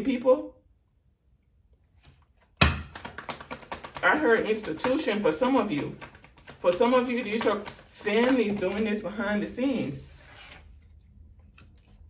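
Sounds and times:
cards being shuffled by hand: 2.0s - 12.0s.

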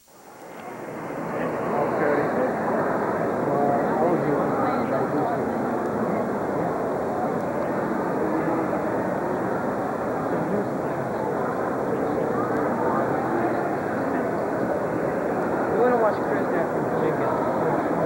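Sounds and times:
crowd murmur: 0.3s - 18.0s.

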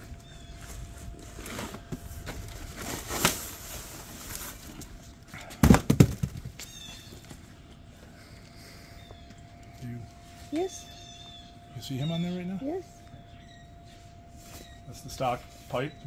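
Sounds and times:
cardboard box rustling and scraping: 0.6s - 4.8s
loud knocks on box: 5.6s - 6.6s.

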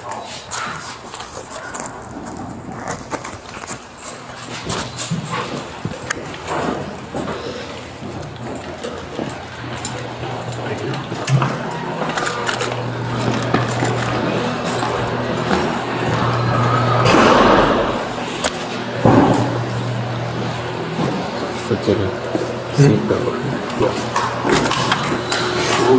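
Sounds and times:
footsteps: 0.0s - 25.9s
steady low hum: 1.4s - 25.9s
duty gear clinking: 2.8s - 16.4s.

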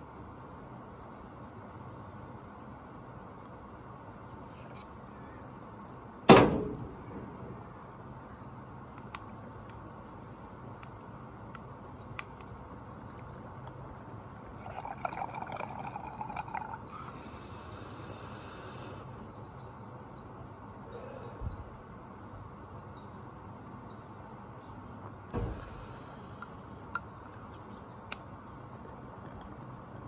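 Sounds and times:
thump: 6.3s - 7.0s, 25.3s - 25.8s
water bubbling in a bong: 14.5s - 17.1s
short high hiss: 17.0s - 19.1s.

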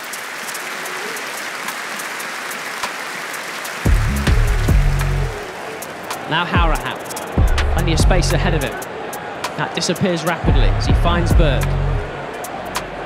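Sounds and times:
deep bass notes: 3.9s - 5.4s, 7.4s - 8.6s, 10.5s - 12.1s.

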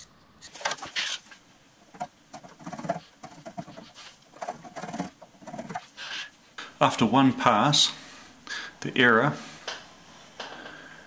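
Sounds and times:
hand scraper scraping metal: 2.0s - 5.9s.

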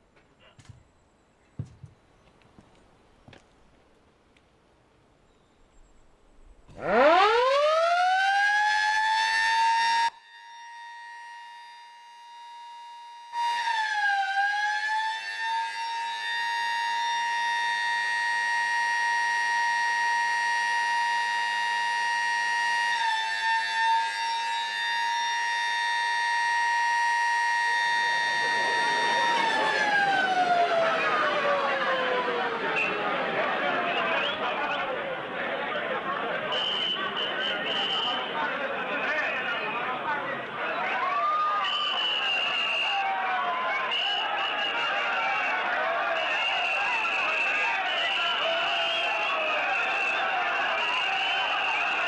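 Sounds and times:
siren wailing: 6.7s - 34.8s.

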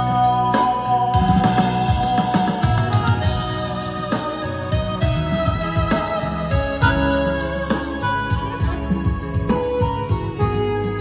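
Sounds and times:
guitar music with deep bass line: 0.0s - 11.0s.

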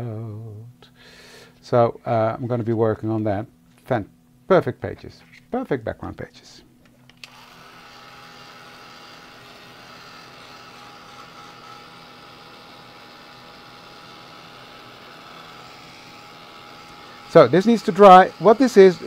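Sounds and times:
heat tool fan blowing: 7.1s - 19.0s.

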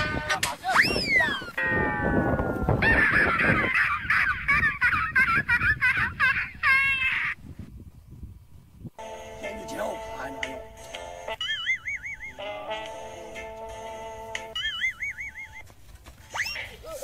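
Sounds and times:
comic honking calls: 0.0s - 0.6s, 1.4s - 3.6s, 9.0s - 15.6s
falling whistle tone: 0.7s - 1.6s.

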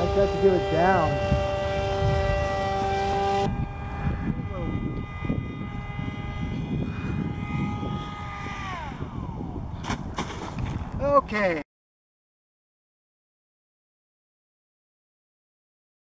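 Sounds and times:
electric motor whine: 0.0s - 11.0s
low wind rumble: 0.0s - 11.6s.

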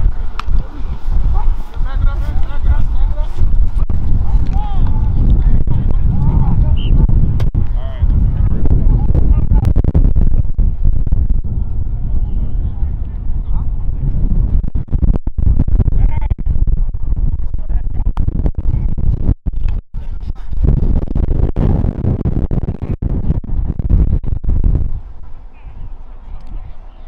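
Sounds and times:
wind buffeting microphone: 0.0s - 27.0s
faint indistinct voices: 25.5s - 27.0s.

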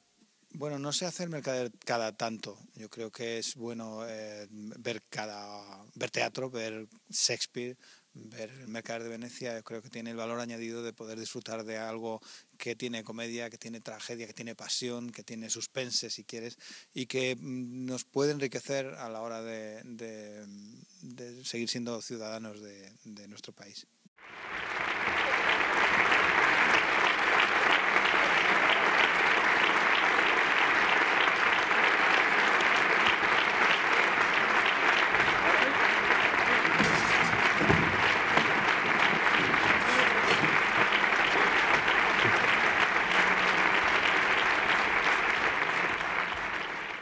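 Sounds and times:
audience applauding: 24.2s - 47.0s.

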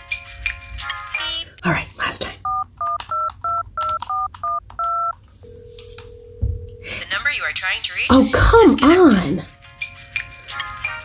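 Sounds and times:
two-tone keypad beeps: 2.5s - 5.1s
steady telephone tone: 5.0s - 7.0s.

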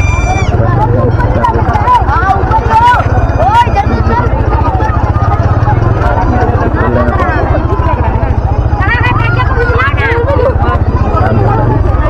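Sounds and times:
motorcycle engine rumbling: 0.0s - 12.0s
people talking: 0.0s - 12.0s.

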